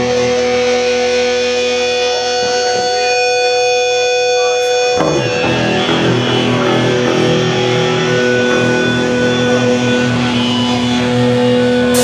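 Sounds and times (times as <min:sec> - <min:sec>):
distorted electric guitar droning: 0:00.0 - 0:12.0.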